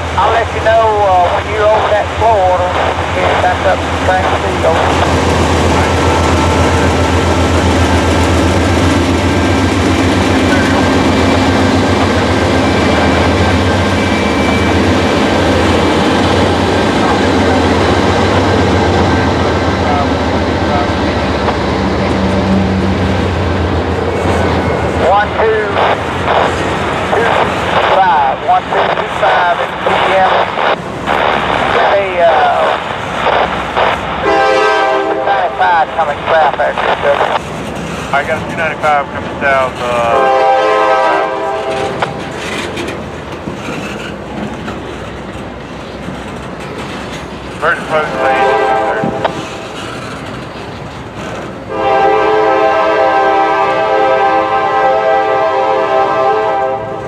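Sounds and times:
diesel locomotive engine drone: 0.0 - 57.0
train wheel squeals: 12.6 - 15.0, 43.5 - 44.8, 49.4 - 51.5
wheel and rail clatter: 37.4 - 40.1, 41.7 - 48.2, 49.0 - 51.7.

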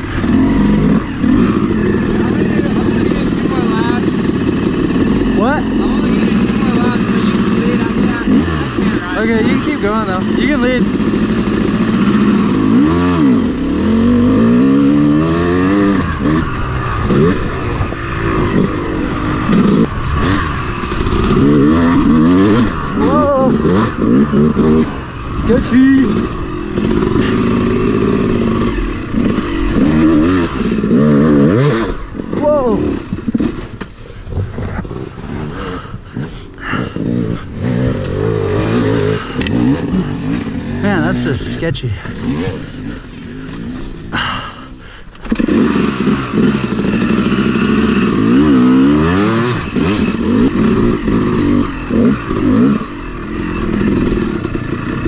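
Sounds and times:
dirt bike engine revving: 0.0 - 55.0.

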